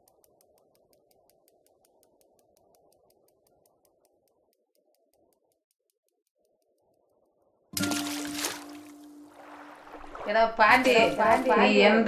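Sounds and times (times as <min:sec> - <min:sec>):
bicycle freewheel ticking: 0:00.0 - 0:07.0.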